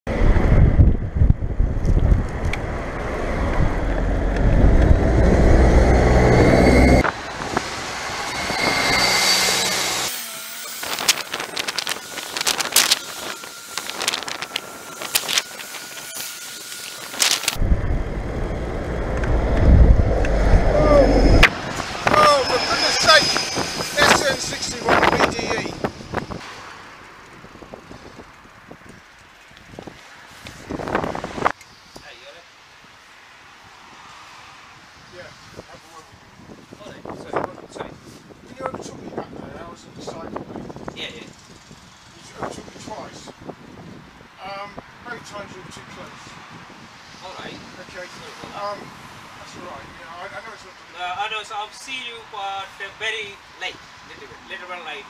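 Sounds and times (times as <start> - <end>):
wind buffeting microphone: 0.1 - 8.8, 10.6 - 26.4, 27.2 - 31.6, 35.0 - 50.1
bus running alongside: 0.1 - 10.1, 17.2 - 31.5
bicycle clicking and rattling: 10.9 - 17.6, 27.0 - 30.8.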